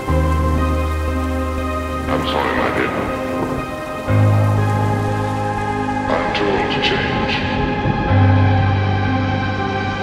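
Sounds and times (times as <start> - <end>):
rain: 0.0 - 10.0.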